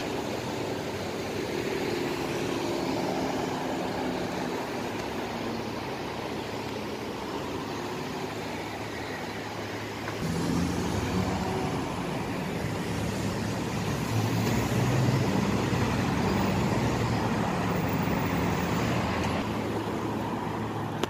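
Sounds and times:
cars driving past: 0.0 - 21.0.

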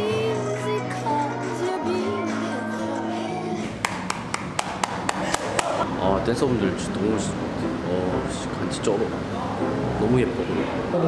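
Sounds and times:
music: 0.0 - 4.9, 5.7 - 11.0
person clapping: 3.8 - 5.8.

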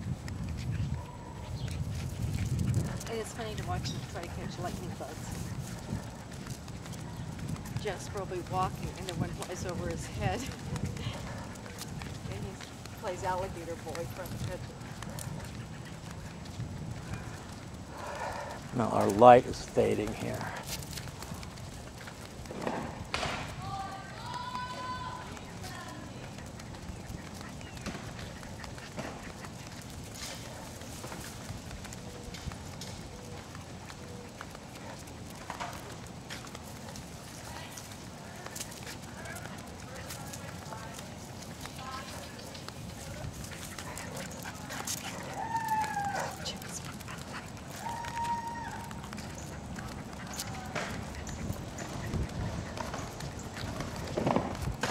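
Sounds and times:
dog paws pattering on concrete: 0.0 - 54.9
sandal footsteps on concrete: 0.1 - 54.9
dogs whining: 43.7 - 54.2.

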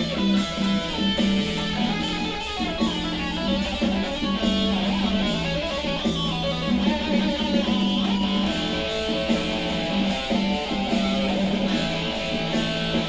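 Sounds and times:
electric guitar lead line: 0.0 - 13.0.

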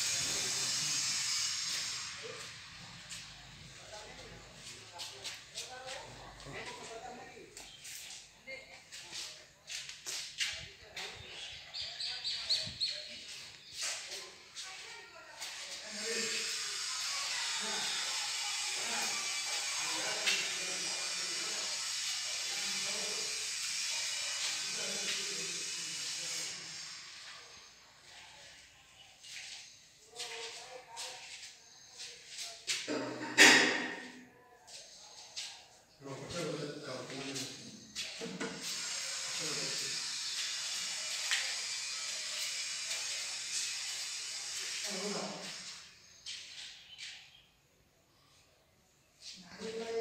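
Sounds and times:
faint voices: 0.0 - 47.3
steady hiss: 19.8 - 27.9, 38.6 - 46.2.

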